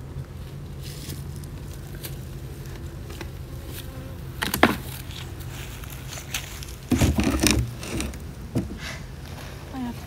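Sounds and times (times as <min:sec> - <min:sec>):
footsteps: 0:04.6 - 0:10.0.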